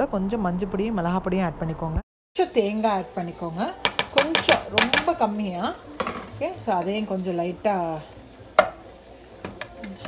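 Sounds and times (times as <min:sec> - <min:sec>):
woman speaking: 0:00.0 - 0:08.1.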